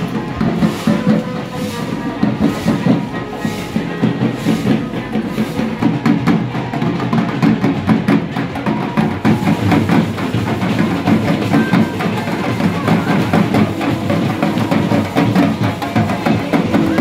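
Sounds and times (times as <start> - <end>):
marching drummers beating drums: 0.0 - 17.0.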